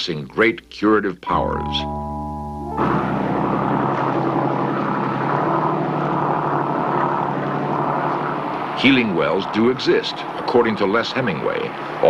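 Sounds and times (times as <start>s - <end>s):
engine droning: 0.7s - 12.0s
rushing noise: 2.7s - 9.8s.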